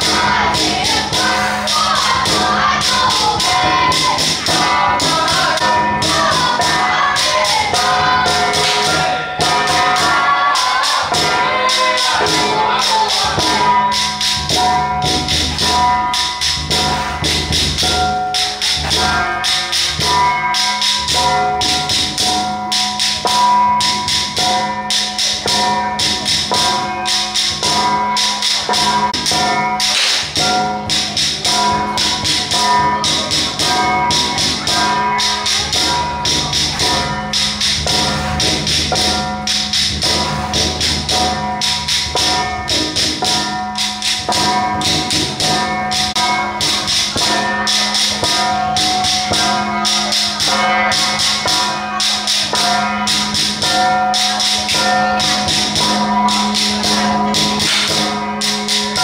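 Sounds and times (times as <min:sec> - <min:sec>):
drum beating fast rhythm: 0:00.0 - 0:59.0
small cymbals: 0:00.0 - 0:59.0.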